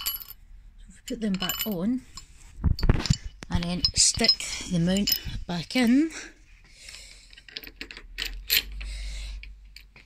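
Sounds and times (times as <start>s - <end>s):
metal parts clicking and tapping: 0.0s - 0.4s, 1.2s - 5.9s, 7.3s - 10.0s.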